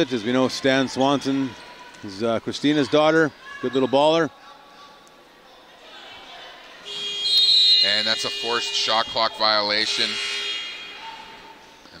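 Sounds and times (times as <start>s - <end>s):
gym background noise: 0.0s - 12.0s.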